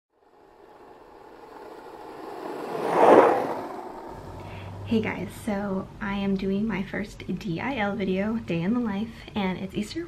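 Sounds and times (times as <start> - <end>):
whoosh sound effect: 0.2 - 4.9.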